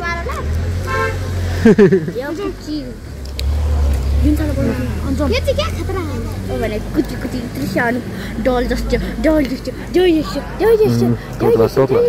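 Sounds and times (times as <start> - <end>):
street traffic rumble: 0.0 - 12.0
vehicle horn toot: 0.9 - 1.3.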